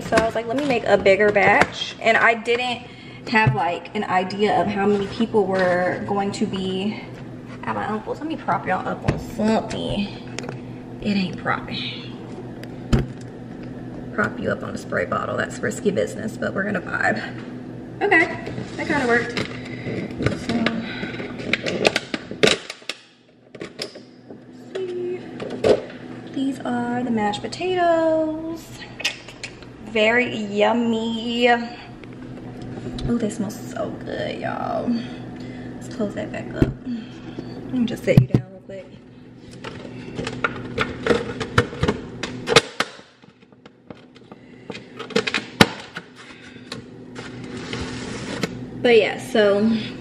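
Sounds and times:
plastic lid crackling and snapping: 0:39.5 - 0:46.1.

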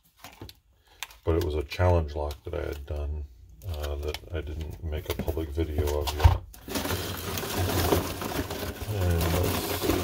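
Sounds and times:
paper packing scraps rustling: 0:03.7 - 0:10.0.

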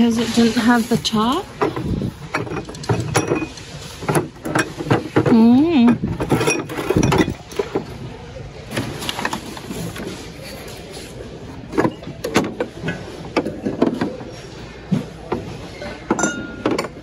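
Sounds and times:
ceramic and glass clinking: 0:01.6 - 0:05.1, 0:05.9 - 0:07.8, 0:15.9 - 0:17.0.

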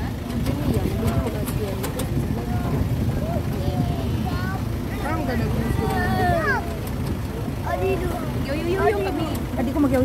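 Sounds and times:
people talking and calling out: 0:00.0 - 0:10.0
scooter engine running: 0:00.0 - 0:10.0.

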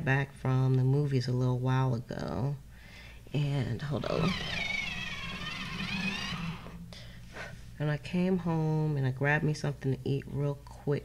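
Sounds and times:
pencil sharpener squeaking: 0:04.0 - 0:06.8.

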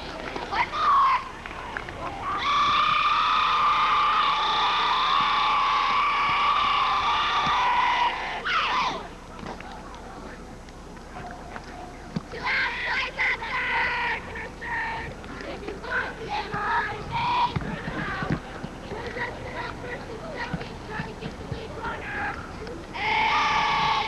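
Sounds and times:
high-pitched voices shouting: 0:21.8 - 0:24.0.

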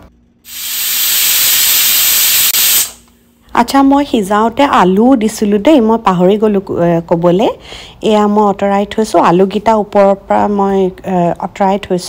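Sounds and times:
pressure cooker hissing steam: 0:00.5 - 0:03.0.

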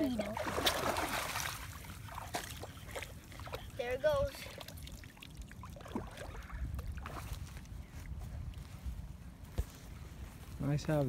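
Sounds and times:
water dribbling and dripping: 0:00.0 - 0:07.7
fish splashing into water: 0:00.2 - 0:03.6, 0:04.4 - 0:07.3.

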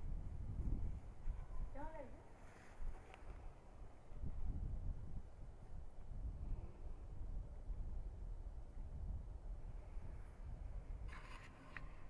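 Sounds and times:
scratchy rustle: 0:11.1 - 0:12.0.

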